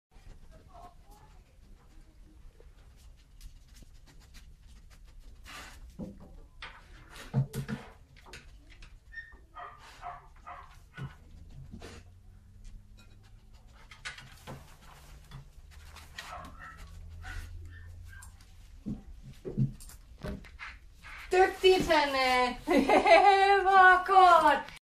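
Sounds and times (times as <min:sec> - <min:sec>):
dog sniffing: 0:01.3 - 0:06.0, 0:09.6 - 0:12.5, 0:13.2 - 0:18.8
scuffles and knocks: 0:18.4 - 0:22.3.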